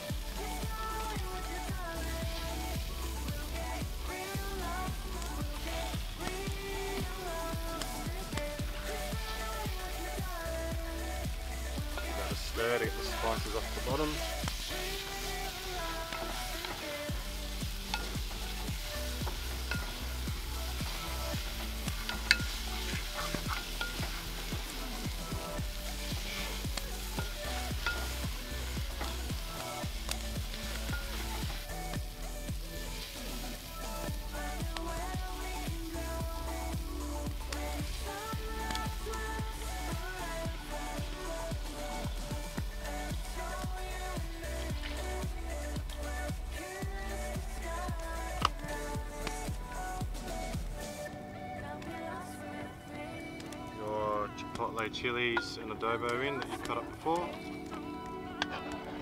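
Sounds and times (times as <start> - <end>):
beef sizzling in a pot: 0.0 - 51.1
background music with bass line: 0.0 - 59.0.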